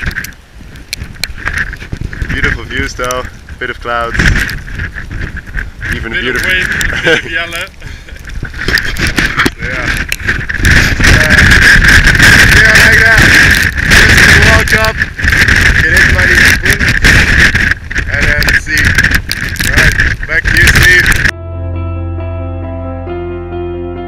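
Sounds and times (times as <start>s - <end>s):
wind buffeting microphone: 0.0s - 21.3s
gentle keyboard music: 21.3s - 24.0s.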